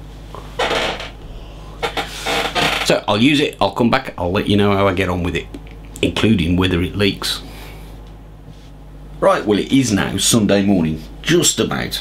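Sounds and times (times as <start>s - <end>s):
person exhaling vapour: 1.2s - 2.3s.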